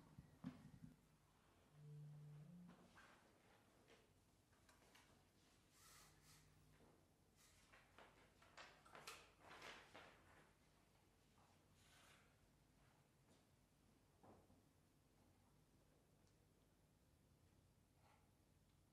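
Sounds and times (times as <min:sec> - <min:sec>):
low steady tone: 0:01.6 - 0:02.9.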